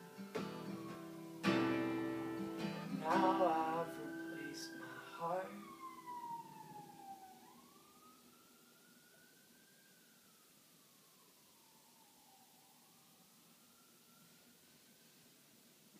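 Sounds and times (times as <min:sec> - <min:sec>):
acoustic guitar chord ringing: 0:00.0 - 0:05.6
faint siren wailing: 0:00.0 - 0:15.6.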